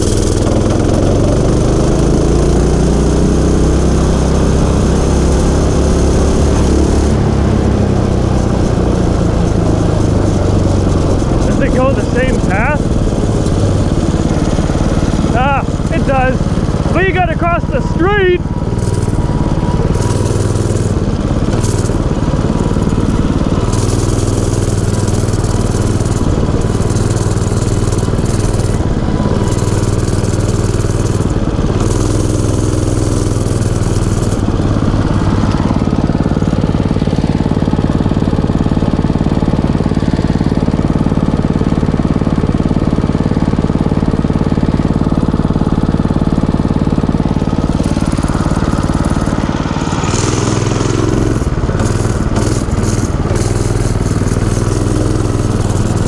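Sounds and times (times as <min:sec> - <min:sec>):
small gas engine running: 0:00.0 - 0:56.0.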